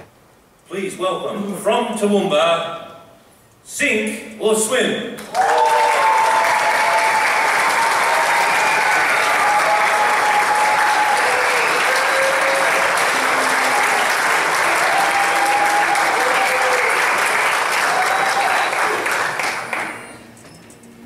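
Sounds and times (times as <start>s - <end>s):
audience applauding: 5.2s - 20.3s.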